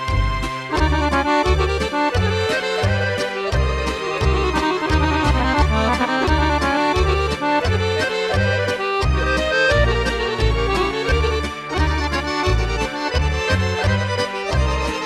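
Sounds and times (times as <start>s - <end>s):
accordion dance tune: 0.0s - 15.0s.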